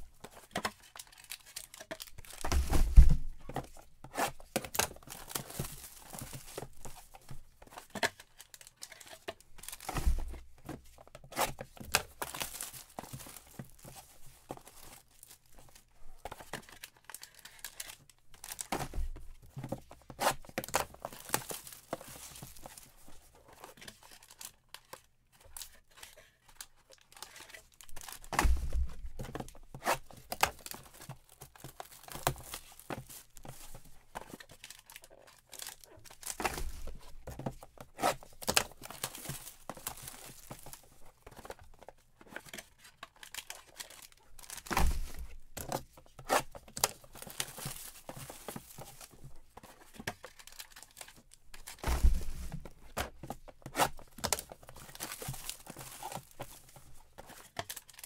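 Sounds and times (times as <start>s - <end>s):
foil packs crinkling: 0.1s - 10.0s, 11.5s - 19.0s, 19.6s - 24.9s, 26.9s - 58.0s
dull thumps of boxes set down: 2.4s - 3.7s, 51.8s - 53.2s
cardboard boxes tearing: 34.6s - 40.8s, 46.1s - 49.1s, 50.4s - 56.7s.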